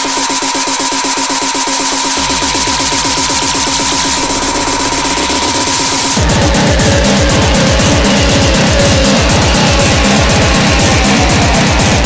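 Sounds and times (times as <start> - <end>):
deep kick drum: 0.0 - 12.0
fast electronic music: 0.0 - 12.0.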